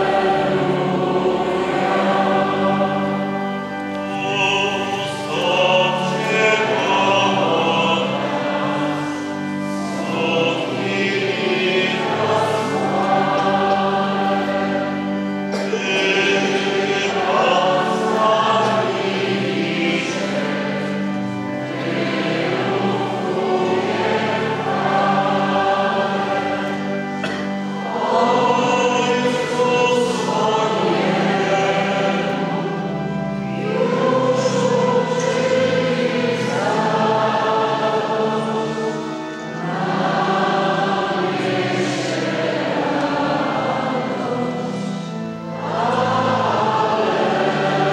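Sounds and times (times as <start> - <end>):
choir singing a slow hymn: 0.0 - 47.9
low accompaniment: 0.0 - 47.9.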